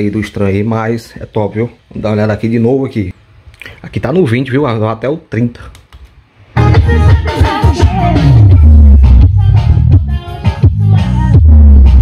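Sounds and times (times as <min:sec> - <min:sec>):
music with singing and heavy bass: 0:06.4 - 0:12.0.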